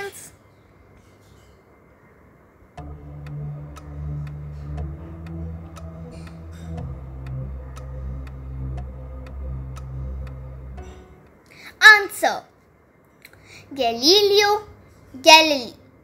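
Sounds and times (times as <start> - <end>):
clock ticking: 2.8 - 11.4
low sustained drone: 2.8 - 11.4.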